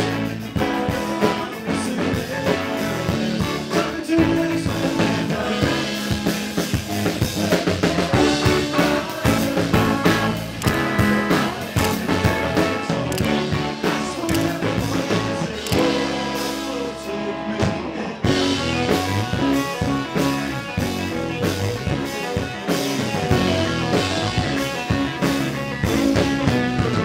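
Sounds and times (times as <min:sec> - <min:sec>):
drum kit: 0:00.0 - 0:27.0
electric guitars: 0:00.0 - 0:27.0.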